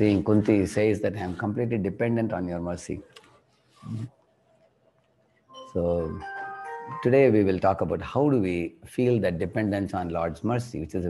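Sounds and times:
man speaking: 0:00.0 - 0:03.1, 0:03.8 - 0:04.1, 0:05.7 - 0:06.3, 0:06.9 - 0:11.0.

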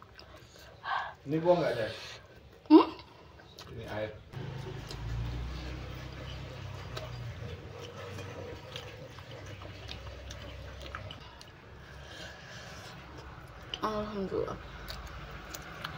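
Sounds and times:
chewing and wet mouth clicks: 0:03.4 - 0:11.6, 0:14.6 - 0:15.9.

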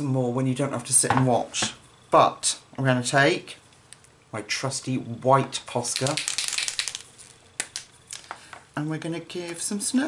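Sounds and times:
paint marker rattling: 0:05.8 - 0:07.9
sharp marker clicks: 0:05.9 - 0:07.0.

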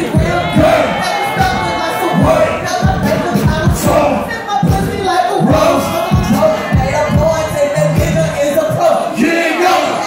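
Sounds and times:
crowd and rapper shouting: 0:00.0 - 0:10.0
hip-hop beat: 0:00.0 - 0:10.0.

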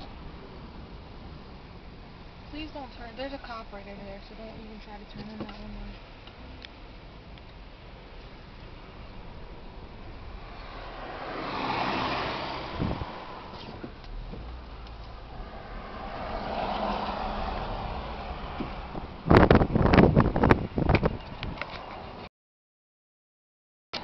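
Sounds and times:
road and tyre noise in car: 0:00.0 - 0:22.3.

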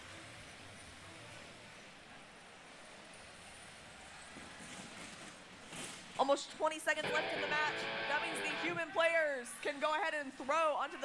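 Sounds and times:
large hall background noise: 0:00.0 - 0:11.0.

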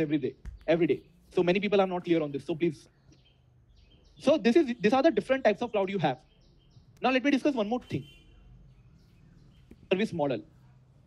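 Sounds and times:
man speaking: 0:00.0 - 0:02.9, 0:09.9 - 0:10.6.

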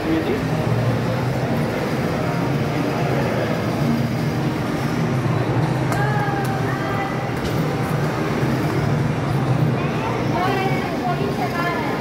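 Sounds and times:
wheels rolling on tiled floor: 0:00.0 - 0:12.0.

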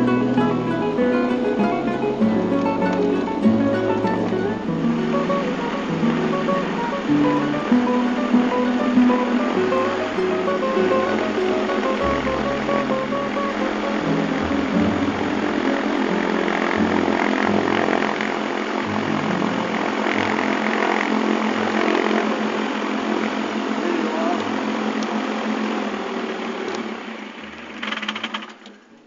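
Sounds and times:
aircraft engine and propeller: 0:00.0 - 0:28.7
engine rattle: 0:26.6 - 0:28.8.

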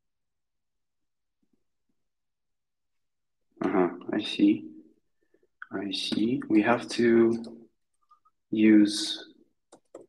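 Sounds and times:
man speaking: 0:03.6 - 0:04.7, 0:05.6 - 0:07.6, 0:08.5 - 0:09.4.

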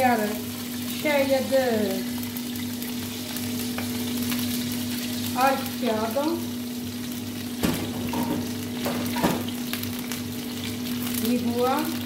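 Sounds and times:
garlic sizzling in oil: 0:00.0 - 0:12.0.

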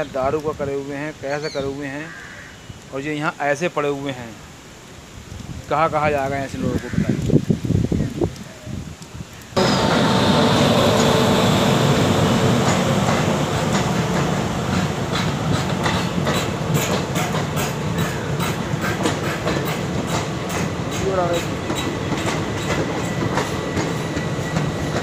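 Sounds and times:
rail joints clickety-clack: 0:09.6 - 0:25.0
train wheels rumbling on rails: 0:09.6 - 0:25.0.

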